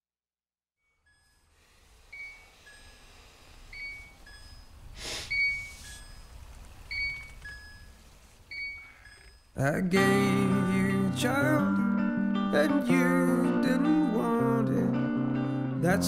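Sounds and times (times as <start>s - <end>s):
breathy rush of noise: 1.2s - 9.4s
two-note whistle: 3.7s - 6.3s.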